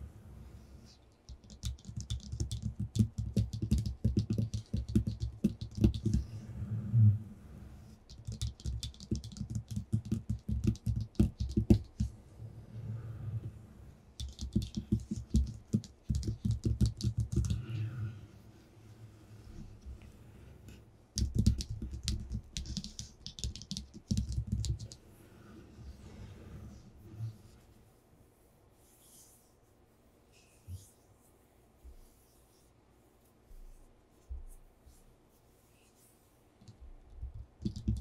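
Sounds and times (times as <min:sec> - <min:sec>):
fingernails tapping on paper: 0:01.3 - 0:06.3, 0:08.1 - 0:12.1, 0:14.2 - 0:17.6, 0:21.2 - 0:25.0, 0:37.4 - 0:38.0.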